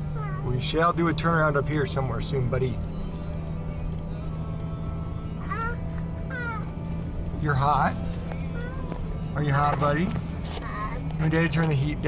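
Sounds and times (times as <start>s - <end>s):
vehicle engine drone: 0.0s - 12.0s
child whiny cry: 8.5s - 9.0s.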